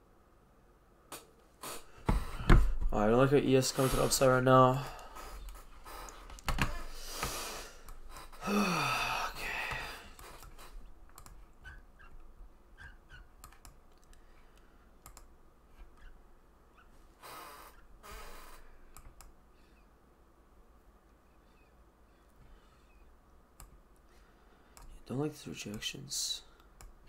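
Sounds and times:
mouse and keyboard clicks: 12.8 - 14.2.

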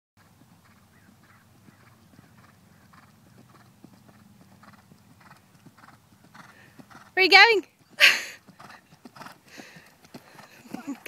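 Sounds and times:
horse hoofbeats on grass: 0.2 - 11.0.

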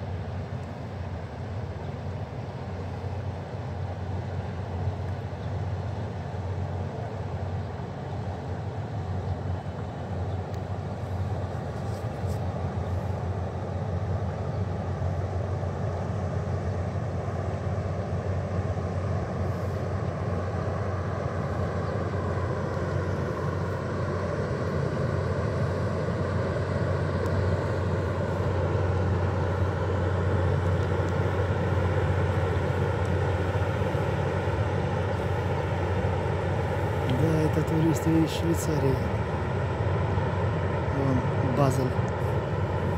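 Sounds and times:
ship engines droning: 0.0 - 42.9.

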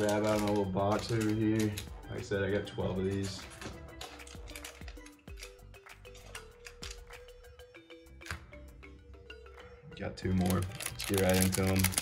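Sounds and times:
card packs clicking and rustling: 0.0 - 7.3, 10.2 - 12.0
quiet background music: 0.0 - 12.0.

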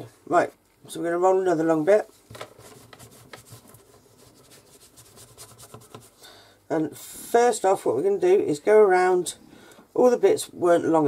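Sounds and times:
hands rubbing clay: 2.3 - 6.2.

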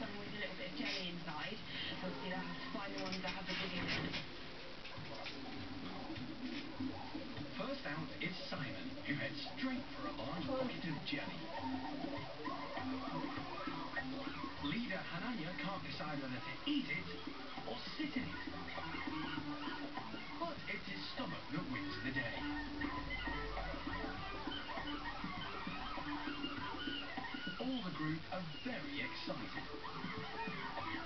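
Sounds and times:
documentary background music: 0.0 - 31.0.

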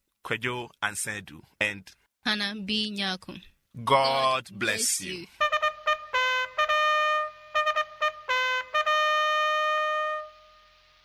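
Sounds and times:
trumpet long note: 5.4 - 10.9.

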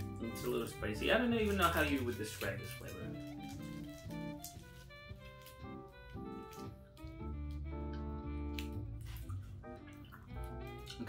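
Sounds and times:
jazz music: 0.0 - 11.0.

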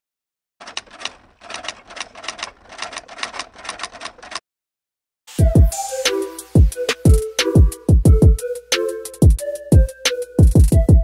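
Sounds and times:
keystroke clicks: 0.6 - 4.4.

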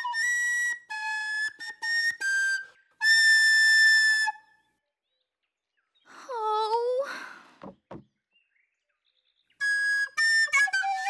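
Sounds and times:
recorder playing: 0.0 - 4.5, 9.6 - 11.0.

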